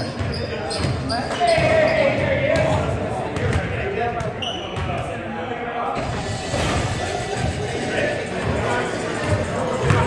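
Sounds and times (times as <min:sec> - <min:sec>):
people talking: 0:00.0 - 0:10.0
basketballs bouncing on wooden floor: 0:00.1 - 0:05.0.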